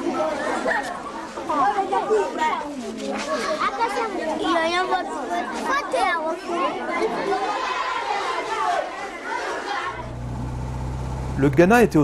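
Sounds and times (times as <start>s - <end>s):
children chattering: 0.0s - 10.3s.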